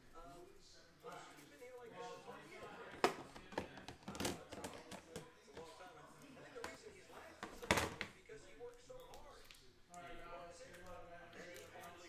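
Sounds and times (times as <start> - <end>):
handling clicks and knocks: 3.0 - 5.7.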